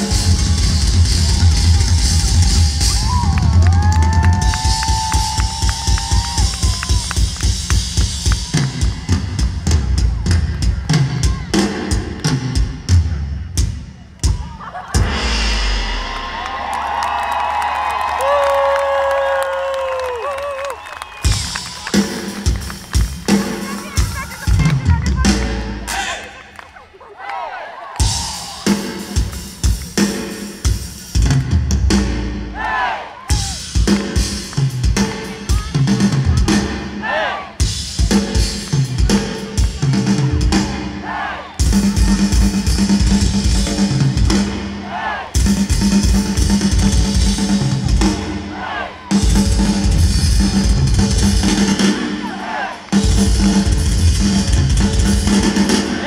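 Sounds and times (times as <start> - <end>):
rock drumming: 0.0 - 26.4, 28.0 - 56.0.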